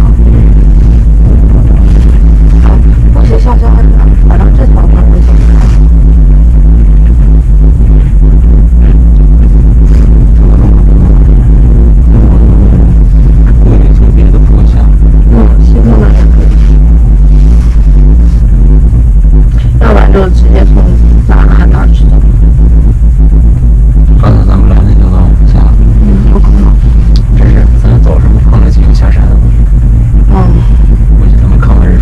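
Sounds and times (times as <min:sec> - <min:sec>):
cable car rumble and hum: 0:00.0 - 0:32.0
muffled voices: 0:00.0 - 0:32.0.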